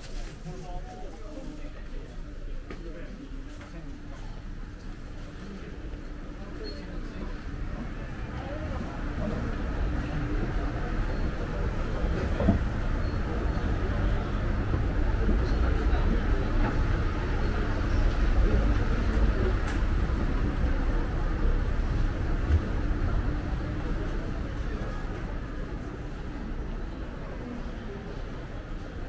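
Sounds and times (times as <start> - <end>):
people's voices: 0.0 - 29.0.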